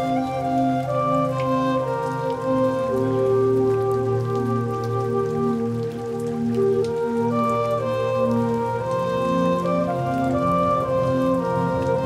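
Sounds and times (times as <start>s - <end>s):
light rain patter: 0.0s - 12.0s
slow ambient music chords: 0.0s - 12.0s.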